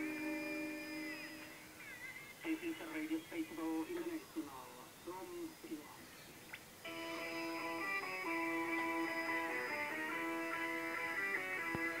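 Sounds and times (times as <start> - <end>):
faint radio hiss: 0.0 - 12.0
pop music through radio speaker: 8.7 - 12.0.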